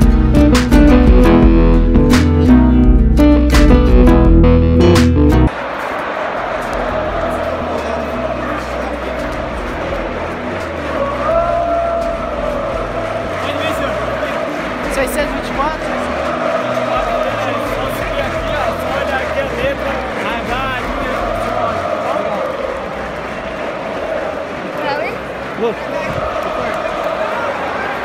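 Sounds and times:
guitar and bass music: 0.0 - 5.5
large stadium crowd noise: 5.4 - 28.0
crowd held calls: 5.5 - 28.0.

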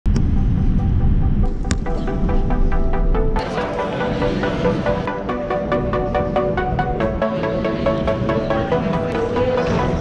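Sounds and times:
music notes: 0.8 - 10.0.

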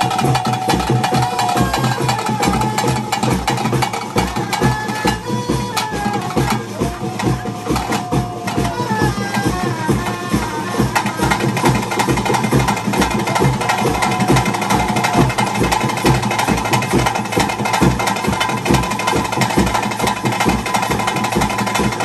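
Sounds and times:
fast ritual drumming: 0.0 - 22.0.

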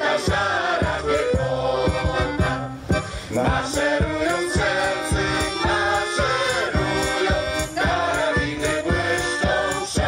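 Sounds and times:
accordion: 0.0 - 10.0
double bass: 0.0 - 10.0
group of voices singing: 0.0 - 10.0.

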